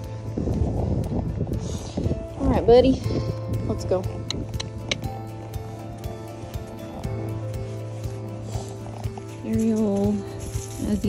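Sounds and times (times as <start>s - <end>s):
background music with held tones: 0.0s - 11.0s.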